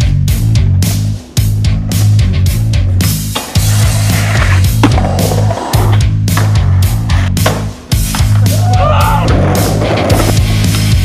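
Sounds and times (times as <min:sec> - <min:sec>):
heavy rock music: 0:00.0 - 0:11.0
skateboard knock: 0:04.4 - 0:06.7, 0:07.4 - 0:08.5.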